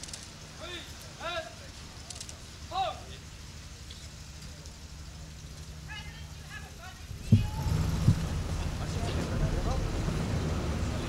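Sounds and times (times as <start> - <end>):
faint voices talking: 0.5 - 11.0.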